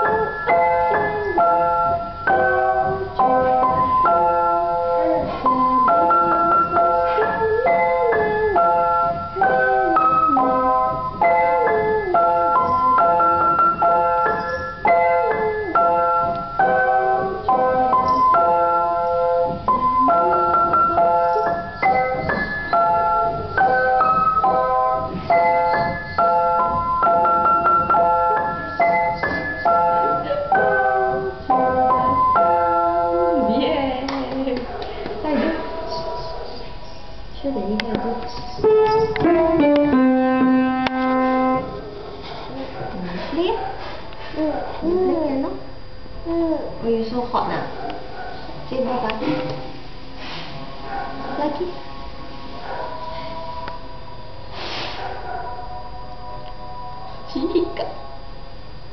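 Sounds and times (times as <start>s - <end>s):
piano playing chords: 0.0s - 34.0s, 38.6s - 42.1s.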